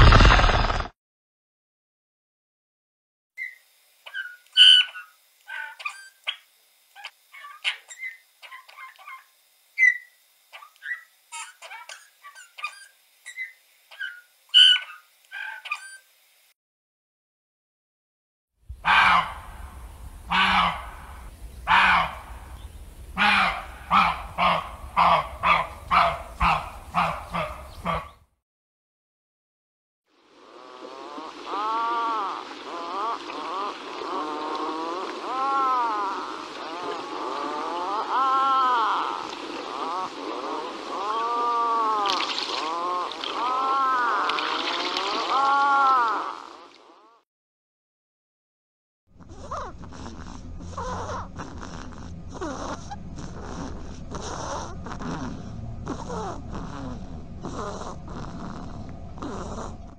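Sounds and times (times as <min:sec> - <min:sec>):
short animal calls: 0:03.4 - 0:16.1, 0:18.8 - 0:28.2, 0:30.9 - 0:47.2
swans honking: 0:18.8 - 0:28.2.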